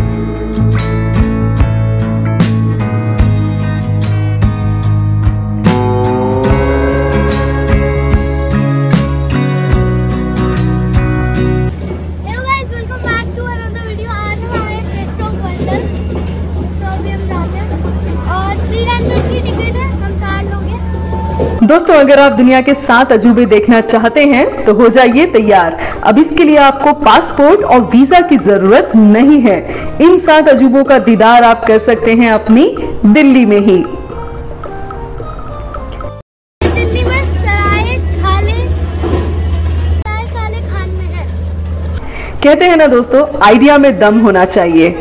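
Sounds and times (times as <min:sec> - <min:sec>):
road traffic rumble: 0:05.2 - 0:20.8
girl speaking in a high voice: 0:12.2 - 0:16.0, 0:16.6 - 0:21.2, 0:36.6 - 0:38.8, 0:40.1 - 0:41.4.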